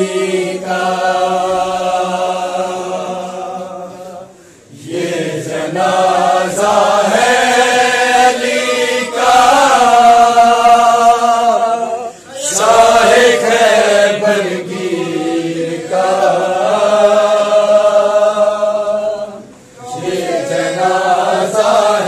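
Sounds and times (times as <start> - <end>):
men chanting a lament: 0.0 - 22.0.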